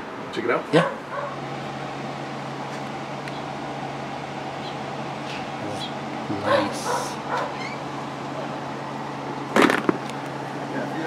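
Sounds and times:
machine humming: 0:00.0 - 0:11.0.

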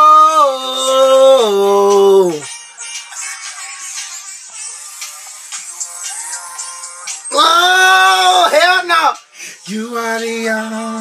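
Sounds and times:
man singing a high held note: 0:00.0 - 0:02.5
faint r and b song: 0:00.0 - 0:11.0.

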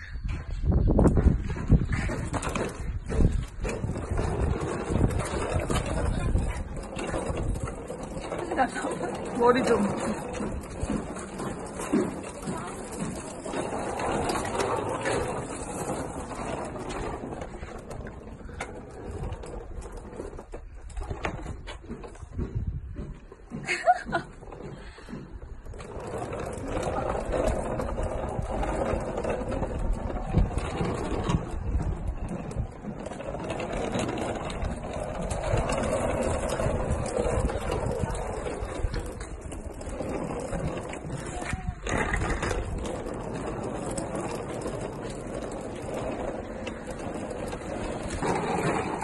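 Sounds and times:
suitcase wheels rolling on concrete: 0:00.0 - 0:49.0.

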